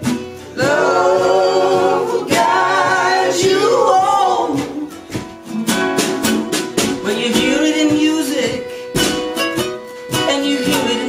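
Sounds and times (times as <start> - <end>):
acoustic guitars strummed: 0.0 - 11.0
person singing: 0.6 - 5.2, 6.7 - 11.0.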